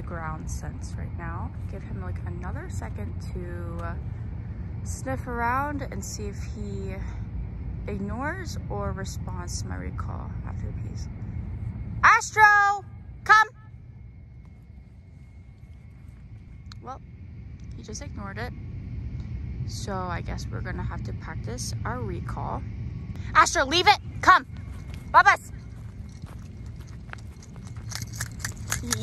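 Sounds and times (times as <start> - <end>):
low outdoor rumble: 0.0 - 29.0
footsteps running on grass: 24.6 - 29.0.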